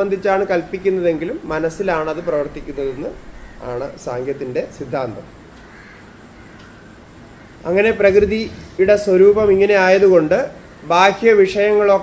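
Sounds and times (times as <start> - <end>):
man speaking: 0.0 - 5.3, 7.6 - 12.0
faint crow-like bird call: 3.1 - 4.1, 5.4 - 7.8, 10.5 - 10.9.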